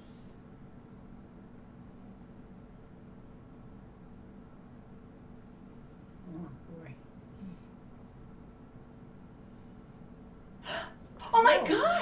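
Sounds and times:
woman gasping: 0:10.6 - 0:11.0.

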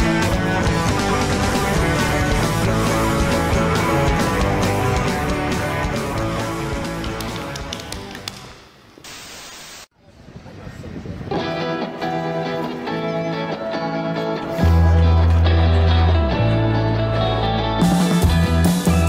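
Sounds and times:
music track with heavy bass: 0:00.0 - 0:07.6, 0:14.4 - 0:19.0
rock music with guitar: 0:00.0 - 0:07.8, 0:11.4 - 0:19.0.

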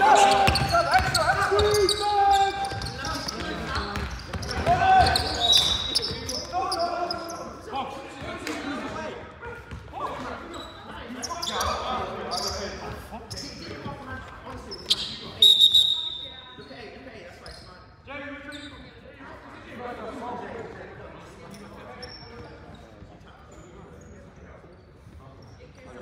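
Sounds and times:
players calling out: 0:00.0 - 0:16.3
basketball bouncing on wooden court: 0:00.3 - 0:02.0, 0:02.6 - 0:06.5, 0:09.7 - 0:09.9.

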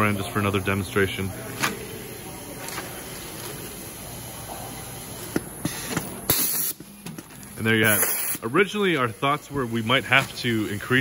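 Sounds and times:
air hiss: 0:04.7 - 0:06.8.

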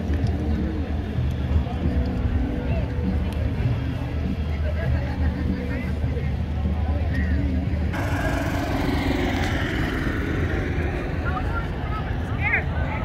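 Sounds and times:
crowd voices: 0:00.0 - 0:13.0
vehicle noise: 0:07.9 - 0:13.0
minivan engine running: 0:08.0 - 0:12.3.

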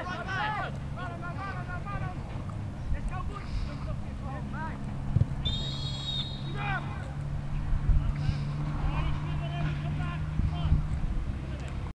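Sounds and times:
players shouting: 0:00.0 - 0:02.3, 0:05.4 - 0:07.2, 0:08.0 - 0:10.8
referee's whistle blast: 0:05.4 - 0:06.6.

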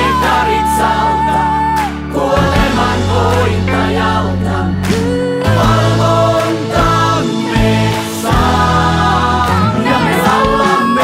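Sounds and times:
choir singing worship song: 0:00.0 - 0:11.0
band accompaniment: 0:01.9 - 0:11.0.

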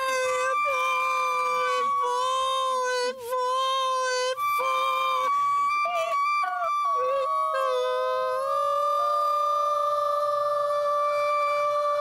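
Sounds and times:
concert flute: 0:00.0 - 0:12.0
woman singing: 0:00.0 - 0:12.0.

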